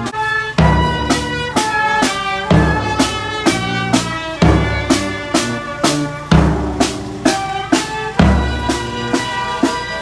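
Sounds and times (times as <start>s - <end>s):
heavy bass drum beat: 0.0s - 10.0s
sustained melody notes: 0.0s - 10.0s.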